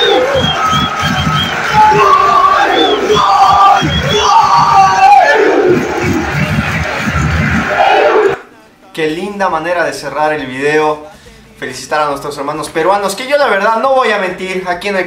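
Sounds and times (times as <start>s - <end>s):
stadium crowd cheering and chanting: 0.0s - 8.6s
fan shouting close to microphone: 1.5s - 6.8s.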